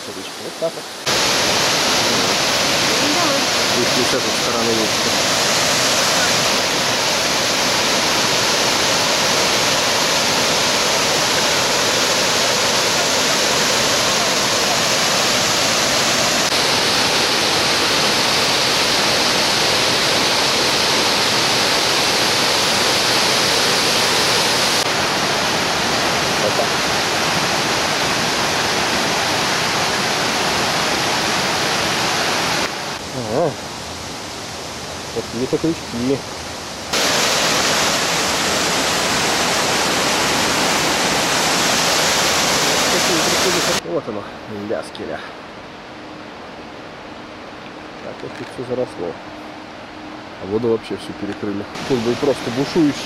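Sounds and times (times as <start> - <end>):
waterfall rushing over rock: 0.0 - 43.8, 51.7 - 53.0.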